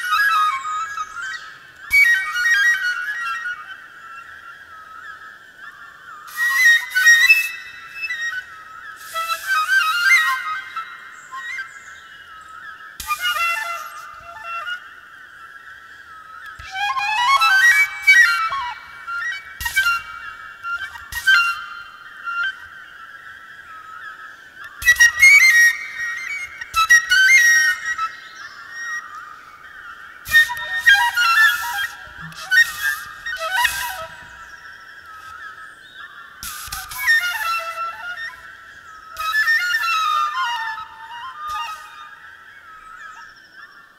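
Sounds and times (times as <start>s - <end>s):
flute melody: 0.0s - 3.8s, 6.3s - 12.0s, 13.0s - 15.0s, 16.5s - 22.7s, 24.6s - 29.3s, 30.3s - 35.5s, 36.4s - 43.2s.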